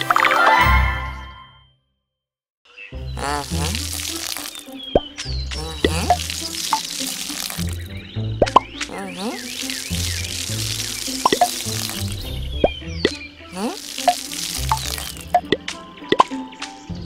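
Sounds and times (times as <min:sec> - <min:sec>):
cartoon music with stepping bass: 0:07.6 - 0:09.0, 0:09.7 - 0:16.4
rising plop sound effects: 0:08.4 - 0:08.9, 0:09.8 - 0:13.2, 0:13.9 - 0:16.4.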